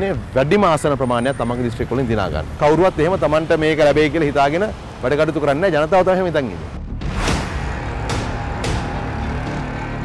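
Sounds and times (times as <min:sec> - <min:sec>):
electronic theme music: 0:06.8 - 0:10.0
sharp musical hits: 0:06.9 - 0:10.0.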